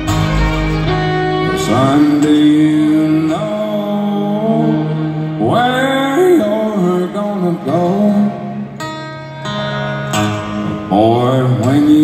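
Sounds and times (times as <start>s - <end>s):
upright bass: 0.0s - 2.2s
bowed fiddle melody: 0.0s - 3.5s
strummed acoustic guitar: 0.0s - 12.0s.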